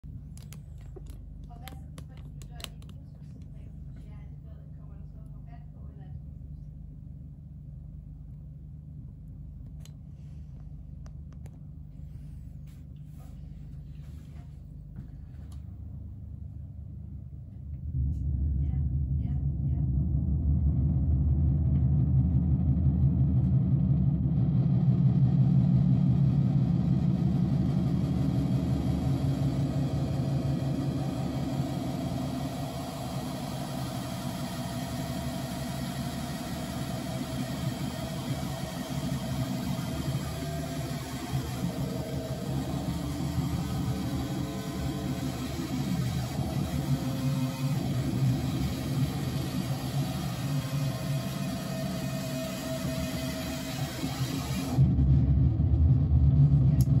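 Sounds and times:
synthesizer noise drone: 15.8 - 57.0.

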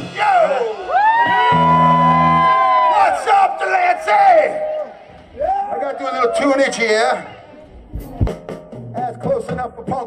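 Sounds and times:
audience shouting and cheering: 0.0 - 9.0.

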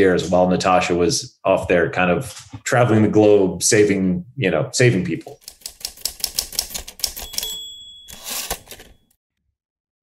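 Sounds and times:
typewriter keys clacking: 5.4 - 9.1
typewriter bell ding: 6.7 - 9.1.

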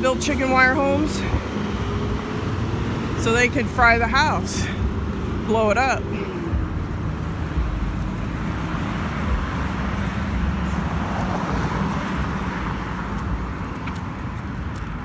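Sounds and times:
road traffic: 0.0 - 15.0
vehicle passing: 0.0 - 15.0.

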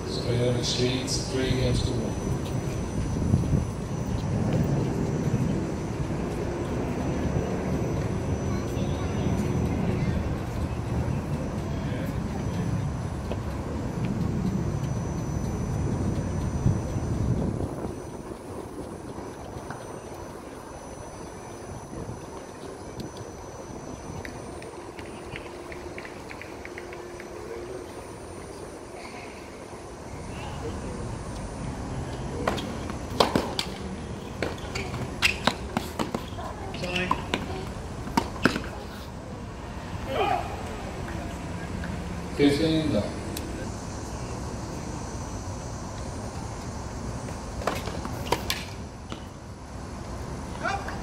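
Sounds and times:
low dense outdoor rumble: 0.0 - 51.0.

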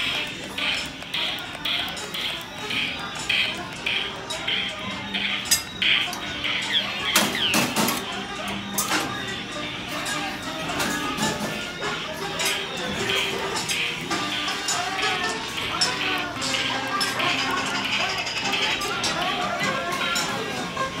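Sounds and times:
music: 0.0 - 21.0
recorded animatronic voices: 0.0 - 21.0
rhythmic clinking: 0.0 - 21.0.

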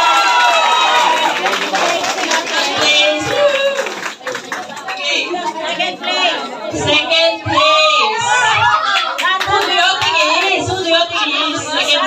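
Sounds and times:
crowd chatter: 0.0 - 12.0
hands clapping: 0.5 - 5.0.

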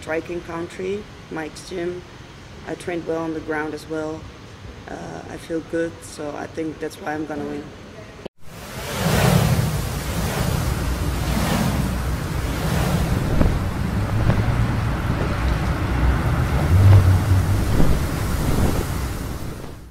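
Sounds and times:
deep rumble: 8.4 - 19.9
rushing wind-like noise: 8.4 - 19.9.

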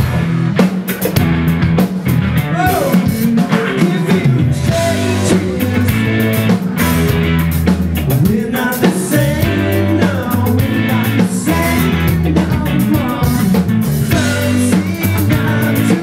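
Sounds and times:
live rock band playing: 0.0 - 16.0
man singing: 2.4 - 6.7, 8.1 - 16.0.

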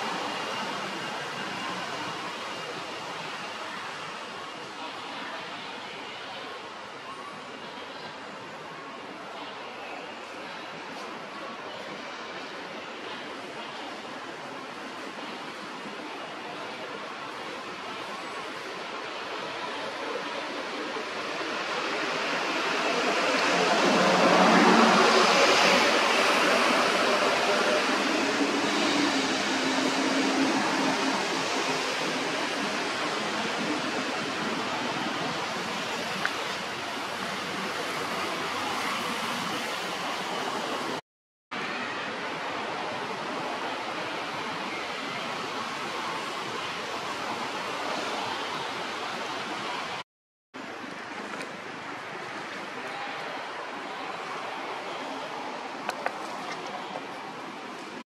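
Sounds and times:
steady rushing outdoor noise: 0.0 - 50.0, 50.6 - 58.0.

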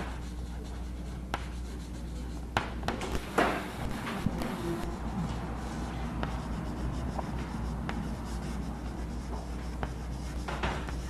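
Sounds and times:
chalk scratching on blackboard: 0.0 - 11.0
chalk tapping: 0.0 - 11.0
steady low hum: 0.0 - 11.0.

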